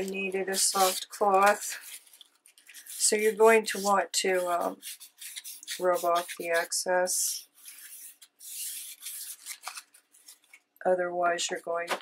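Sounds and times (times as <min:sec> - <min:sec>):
paper napkin rubbing on paper: 0:00.5 - 0:10.4.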